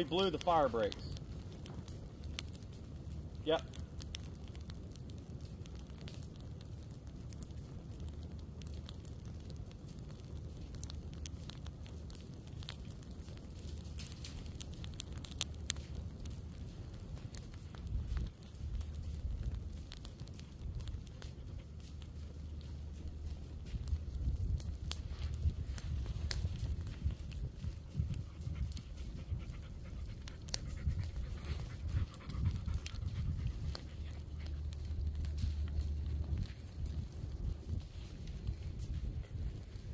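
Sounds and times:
fire crackling in pine needles: 0.0s - 39.9s
wind rumble on microphone: 0.0s - 39.9s.

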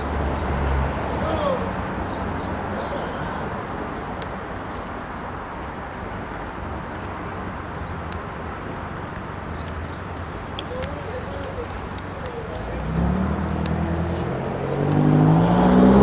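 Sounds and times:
city street traffic: 0.0s - 16.0s.

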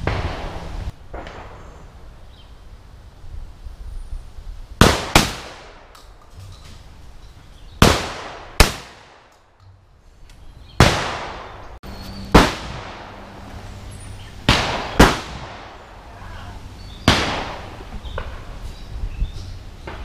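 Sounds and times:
shotgun shots: 4.8s - 5.9s, 7.8s - 9.3s, 10.8s - 11.6s, 12.3s - 13.2s, 14.4s - 15.8s, 17.0s - 18.4s.

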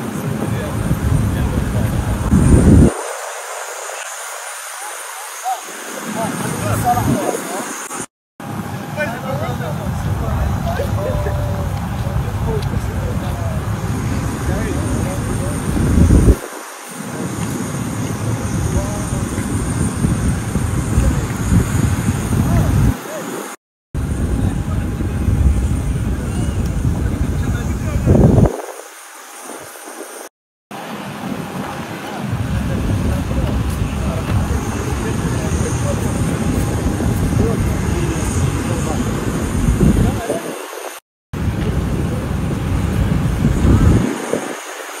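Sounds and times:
indistinct voices: 0.0s - 8.1s, 8.8s - 23.6s, 31.4s - 45.0s
loud low rumble: 32.3s - 40.2s.

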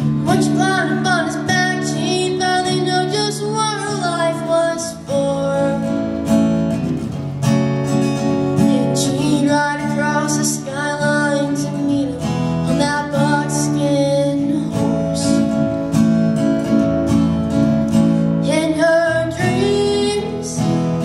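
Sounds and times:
woman singing: 0.0s - 6.2s, 8.6s - 15.9s, 18.4s - 21.0s
acoustic guitar strumming: 0.0s - 21.0s.

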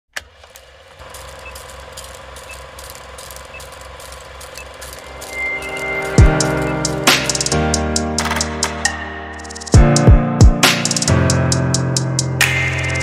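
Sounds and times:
film crackle and pops: 0.5s - 6.7s
short high beep: 4.5s - 7.6s.

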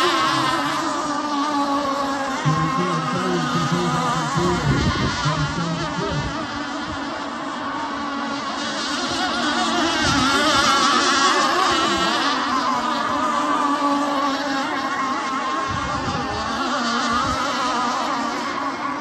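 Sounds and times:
model boat engines whining: 0.0s - 19.0s.

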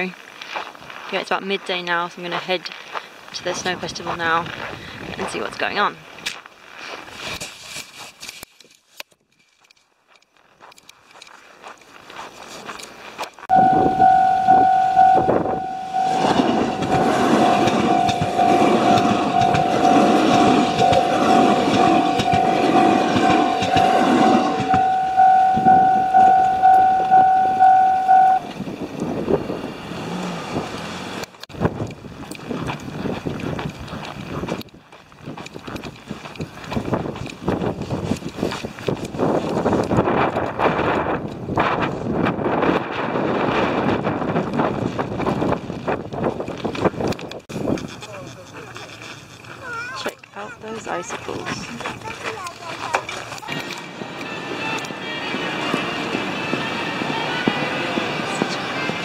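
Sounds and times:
wind noise on microphone: 3.5s - 5.6s, 13.5s - 48.2s
level crossing bell ringing: 13.5s - 28.5s
train passing: 13.5s - 31.4s, 50.4s - 59.0s.

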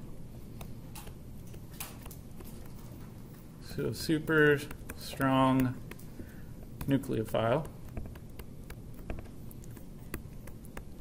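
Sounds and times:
stylus tapping on tablet screen: 4.3s - 11.0s.

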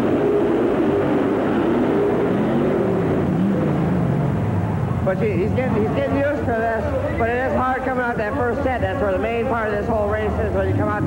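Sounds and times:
monster truck engines at full throttle: 0.0s - 11.0s.

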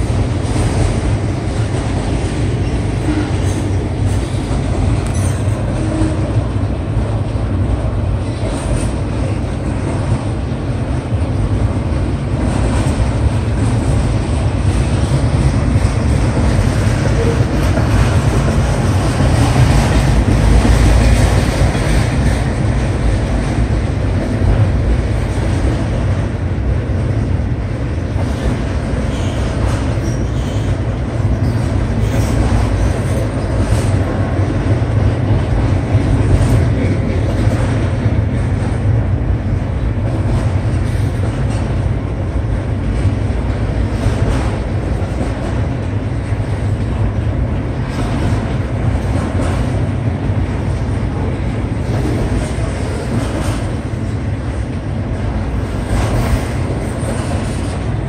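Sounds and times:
freight train wheels rumbling: 0.0s - 58.0s.

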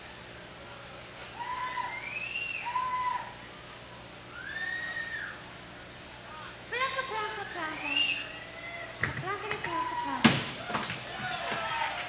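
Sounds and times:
faint high whine: 0.0s - 12.0s
audience whooping calls: 1.0s - 3.5s, 4.3s - 5.5s, 9.7s - 12.0s.

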